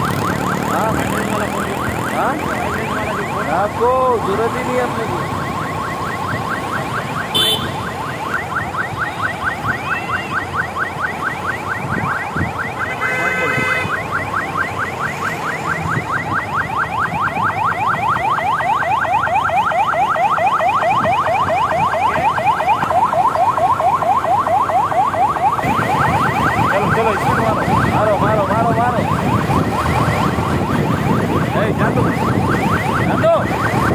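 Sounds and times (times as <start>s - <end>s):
electronic siren yelping: 0.0s - 33.9s.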